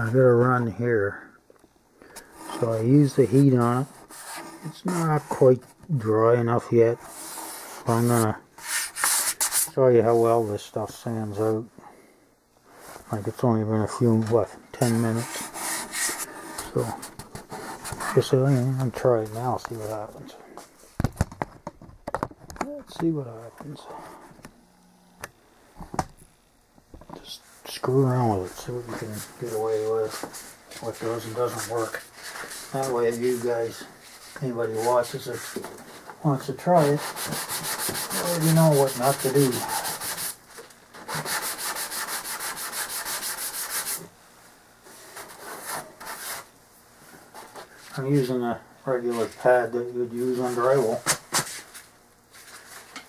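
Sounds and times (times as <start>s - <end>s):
sanding pad rubbing: 2.4s - 5.4s, 7.0s - 9.7s, 14.8s - 18.8s, 36.6s - 40.4s, 41.0s - 44.1s
faint hum: 9.8s - 37.0s.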